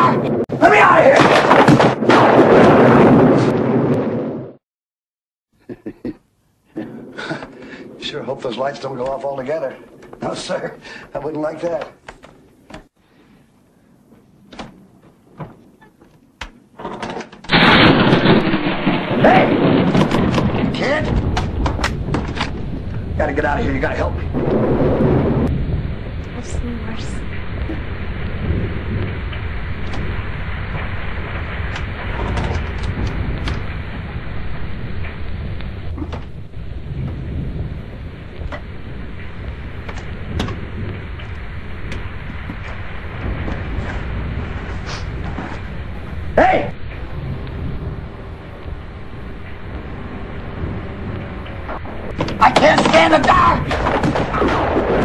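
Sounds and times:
man yelling: 0:00.0 - 0:01.2, 0:52.4 - 0:53.7
low rumble: 0:17.5 - 0:55.0
loud sustained noise: 0:22.1 - 0:55.0.

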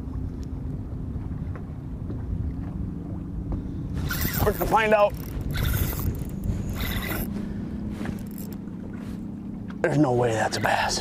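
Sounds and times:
wind rumble: 0:00.0 - 0:09.8
water on boat hull: 0:00.0 - 0:11.0.

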